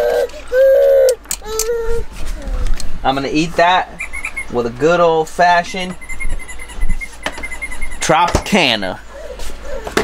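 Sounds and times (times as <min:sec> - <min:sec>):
baby crying: 0:00.0 - 0:02.8, 0:09.1 - 0:10.0.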